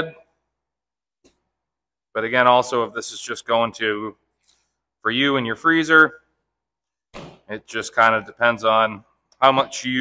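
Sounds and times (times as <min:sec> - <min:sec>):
man speaking: 0:02.1 - 0:04.3, 0:05.0 - 0:06.3, 0:07.5 - 0:10.0.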